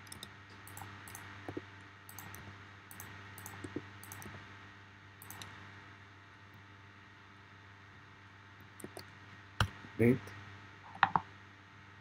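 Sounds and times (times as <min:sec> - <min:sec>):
mouse and keyboard clicks: 0:00.0 - 0:04.4, 0:05.2 - 0:05.6, 0:08.8 - 0:09.8
low electrical hum: 0:00.0 - 0:12.0.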